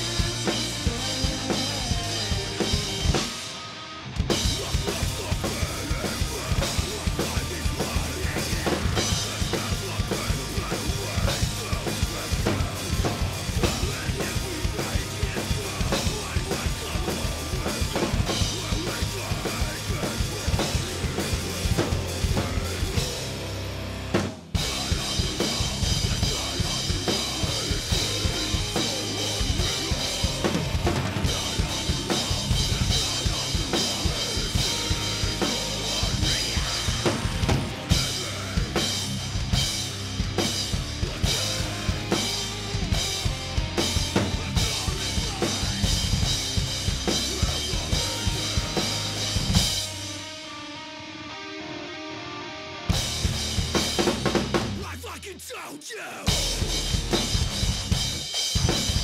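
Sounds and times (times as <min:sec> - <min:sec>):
drum kit played hard: 0:00.0 - 0:50.5, 0:52.9 - 0:59.0
recorded metal track: 0:00.0 - 0:59.0.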